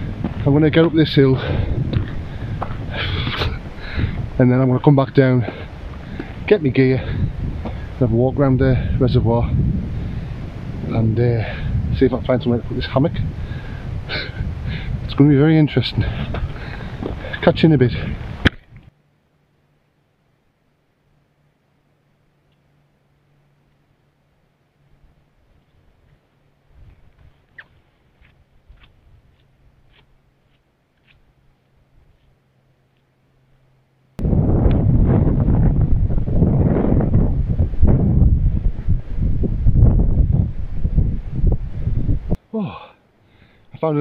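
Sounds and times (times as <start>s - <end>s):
wind buffeting microphone: 0.0s - 18.9s, 34.2s - 42.4s.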